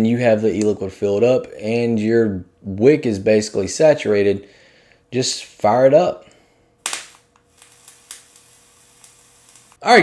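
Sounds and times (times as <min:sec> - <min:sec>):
liquid sizzling on hot coil: 0:06.8 - 0:10.0.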